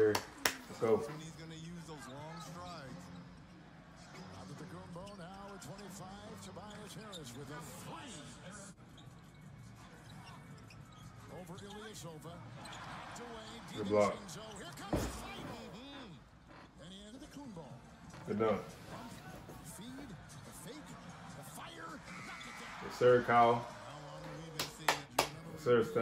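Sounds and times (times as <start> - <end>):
arena crowd noise: 0.0 - 26.0.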